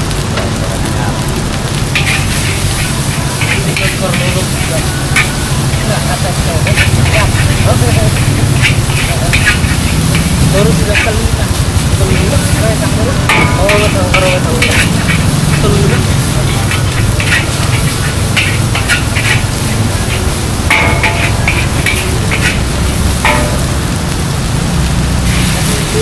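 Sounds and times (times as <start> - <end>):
rice sizzling in a wok: 0.0 - 26.0
metal spatula scraping a wok: 1.9 - 24.2, 25.3 - 26.0.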